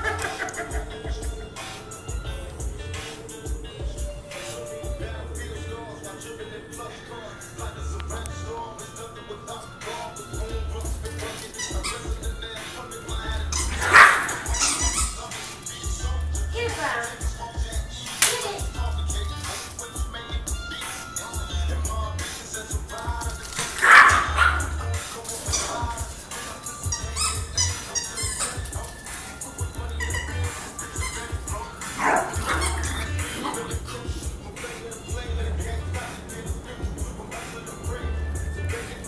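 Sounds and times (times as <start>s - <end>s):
small dog barking: 0.0s - 1.0s, 11.5s - 12.4s, 13.1s - 15.4s, 23.6s - 34.2s
background music: 0.0s - 39.0s.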